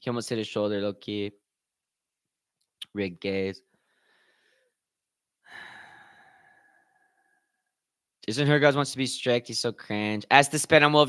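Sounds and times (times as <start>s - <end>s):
person sighing: 5.4s - 7.4s.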